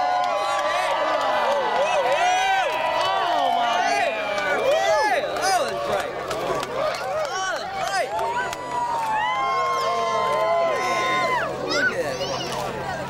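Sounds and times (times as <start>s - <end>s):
crowd cheering and shouting: 0.0s - 13.0s.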